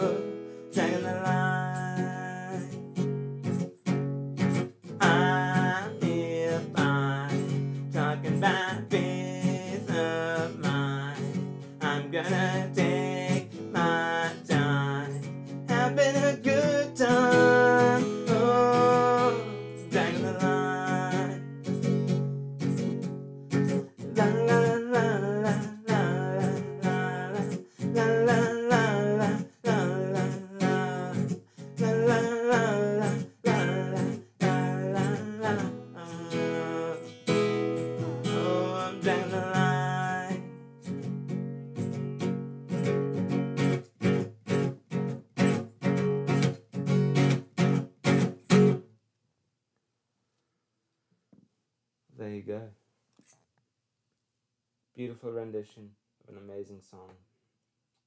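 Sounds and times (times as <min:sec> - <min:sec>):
man singing: 0:00.0 - 0:02.8, 0:04.9 - 0:21.5, 0:24.0 - 0:40.5
acoustic guitar strumming: 0:00.0 - 0:48.9.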